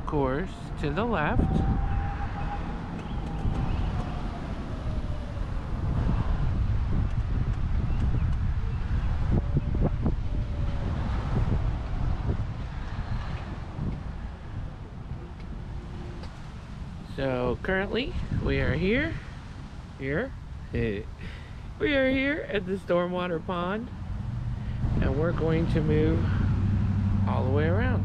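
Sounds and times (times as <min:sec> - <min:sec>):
wind rumbling on microphone: 0:00.0 - 0:28.0.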